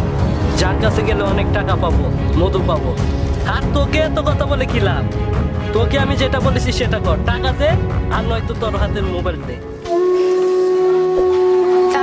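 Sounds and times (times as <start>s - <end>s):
long droning music note: 9.8s - 12.0s.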